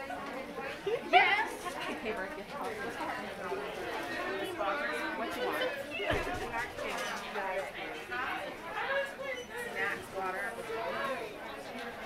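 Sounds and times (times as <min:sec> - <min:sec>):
chatter of shoppers: 0:00.0 - 0:12.0.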